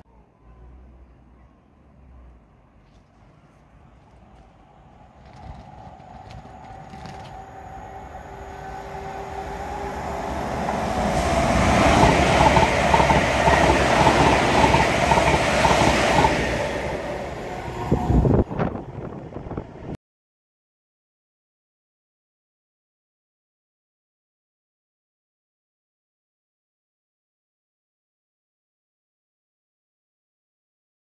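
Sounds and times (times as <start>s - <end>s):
train passing at speed: 0.1s - 20.0s.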